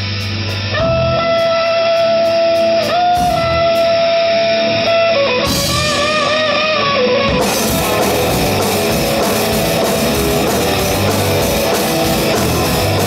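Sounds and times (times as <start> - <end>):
distorted electric guitar lead: 0.0 - 13.0
live rock band: 0.0 - 13.0.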